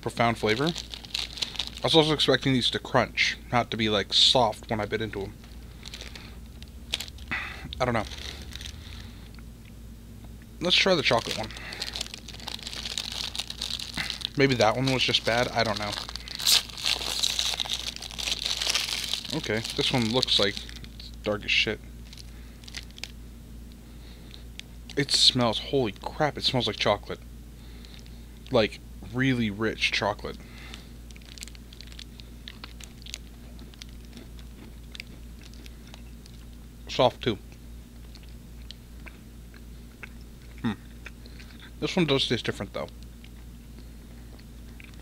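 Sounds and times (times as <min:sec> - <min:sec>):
steady low hum: 0:00.0 - 0:45.0
plastic wrapper crinkling: 0:00.1 - 0:02.4, 0:05.1 - 0:09.2, 0:10.8 - 0:21.2, 0:22.0 - 0:23.2, 0:30.7 - 0:36.6
chewing mouth clicks: 0:33.5 - 0:36.1, 0:38.0 - 0:41.7.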